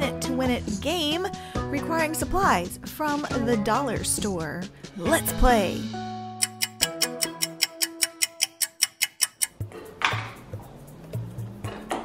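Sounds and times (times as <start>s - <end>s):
music beat: 5.0s - 12.0s
fast timer ticking: 6.4s - 9.6s.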